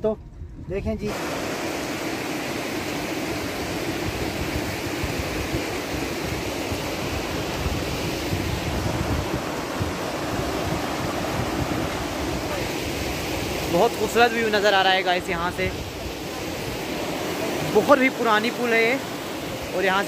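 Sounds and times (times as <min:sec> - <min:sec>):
stream rushing over rocks: 0:01.1 - 0:20.0.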